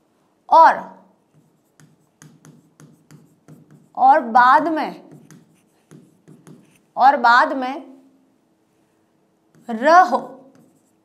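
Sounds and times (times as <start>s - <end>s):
chalk scratching on blackboard: 1.3s - 4.0s, 4.7s - 7.0s, 9.5s - 11.0s.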